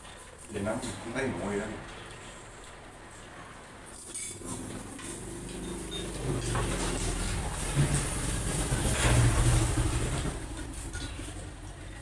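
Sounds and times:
vehicle engine passing by: 4.4s - 12.0s.

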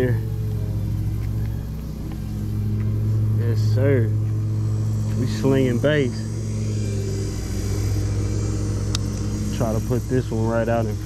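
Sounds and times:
low engine drone: 0.0s - 11.0s.

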